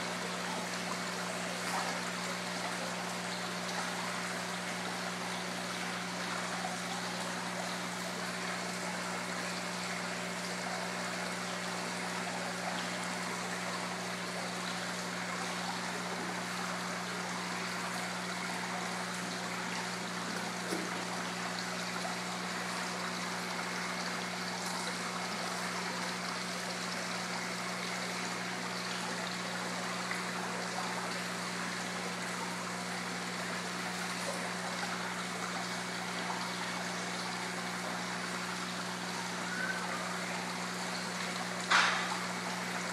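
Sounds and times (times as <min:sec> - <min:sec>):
waterfall trickling into pond: 0:00.0 - 0:42.9.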